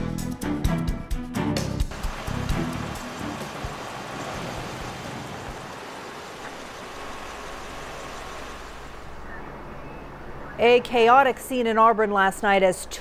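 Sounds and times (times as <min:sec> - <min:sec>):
rushing hiss: 0:01.9 - 0:09.0.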